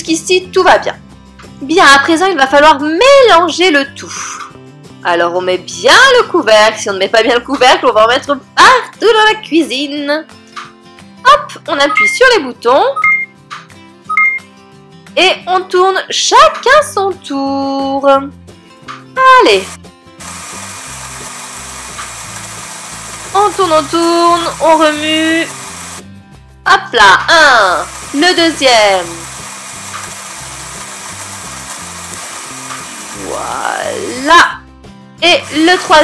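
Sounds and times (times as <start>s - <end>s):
short electronic beeps: 13.0s - 13.3s, 14.1s - 14.5s
toy blender whirring: 19.5s - 26.0s, 27.5s - 34.3s, 35.4s - 36.0s.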